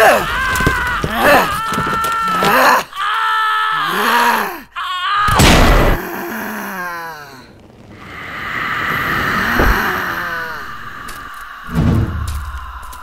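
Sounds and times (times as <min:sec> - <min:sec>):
woman groaning: 0:05.9 - 0:07.5
low thud: 0:11.7 - 0:12.6.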